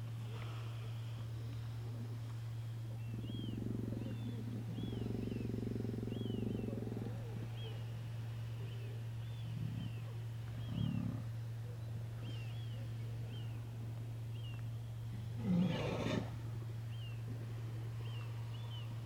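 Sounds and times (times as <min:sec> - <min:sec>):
low electrical hum: 0:00.0 - 0:19.0
sea lions growling: 0:03.0 - 0:08.4, 0:09.0 - 0:11.9, 0:15.2 - 0:16.7.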